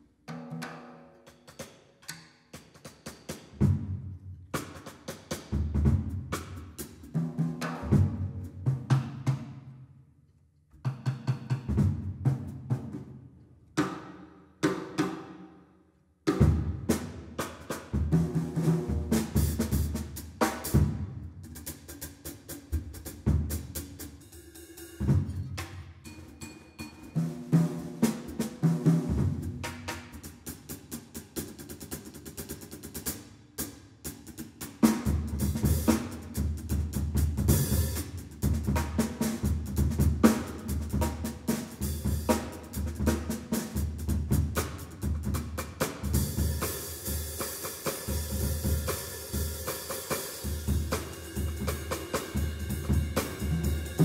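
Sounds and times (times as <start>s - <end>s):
jazz drum kit playing: 2.6s - 9.5s, 16.4s - 54.0s.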